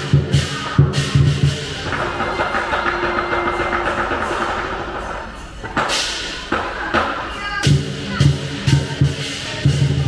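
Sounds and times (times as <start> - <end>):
cymbals playing: 0.0 - 10.0
drum roll: 0.0 - 10.0.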